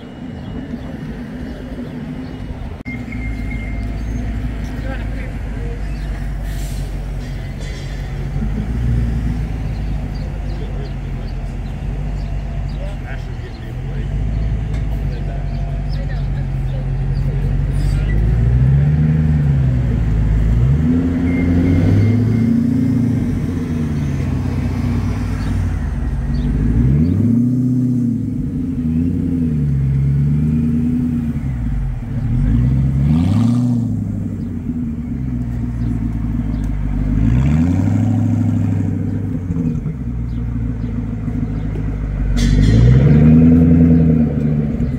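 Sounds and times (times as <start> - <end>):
car engine revving in blips: 8.1 - 44.9.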